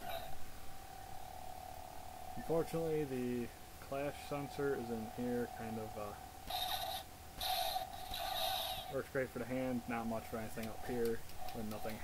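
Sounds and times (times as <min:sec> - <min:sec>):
toy lightsaber electronic hum: 0:00.0 - 0:00.4, 0:06.4 - 0:09.1.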